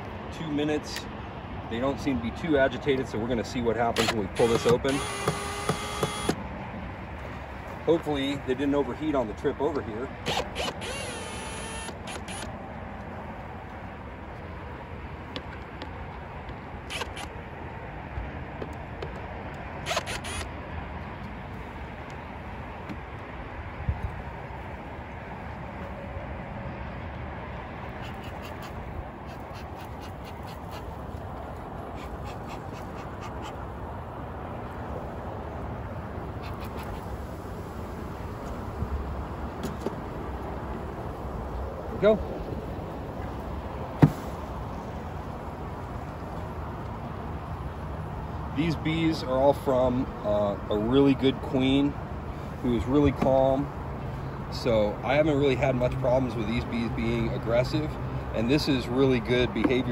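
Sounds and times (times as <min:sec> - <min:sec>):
steady background noise: 0:00.0 - 0:59.9
cordless drill backing out screws: 0:04.0 - 0:06.4.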